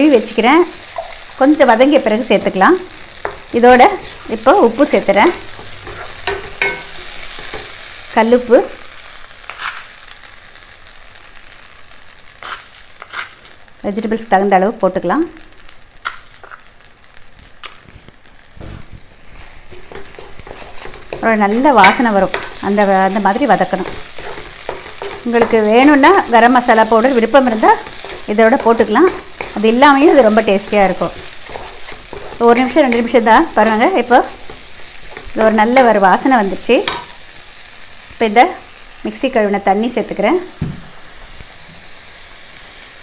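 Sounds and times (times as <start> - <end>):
food sizzling in frying pan: 0.0 - 43.0.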